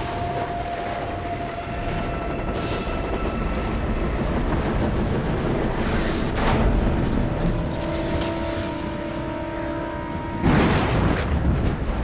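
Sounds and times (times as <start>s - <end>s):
musical drone: 0.0s - 12.0s.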